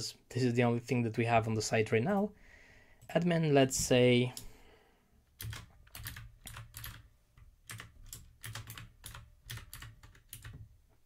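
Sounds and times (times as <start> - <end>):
typing on computer keyboard: 5.4 - 10.7.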